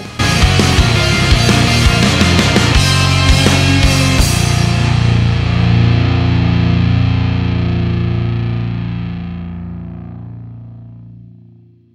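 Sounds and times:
rock music: 0:00.0 - 0:11.4
distorted electric guitar chord: 0:00.0 - 0:11.9.

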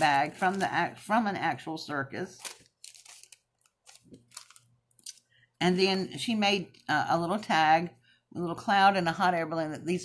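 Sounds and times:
paper rustling: 0:00.0 - 0:01.0, 0:02.4 - 0:05.2.

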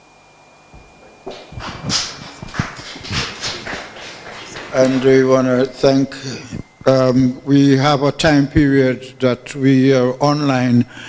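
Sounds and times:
scattered applause: 0:01.0 - 0:05.9.

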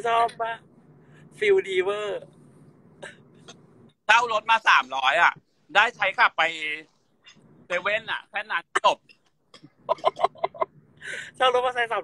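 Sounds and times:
low steady background: 0:00.0 - 0:12.0.

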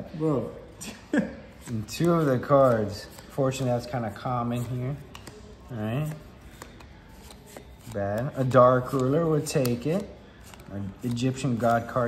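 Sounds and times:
trading cards flipped by hand: 0:01.6 - 0:03.9, 0:04.6 - 0:12.0.

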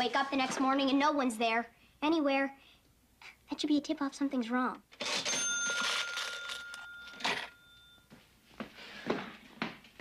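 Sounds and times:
bell ringing with a clatter: 0:05.0 - 0:08.1.

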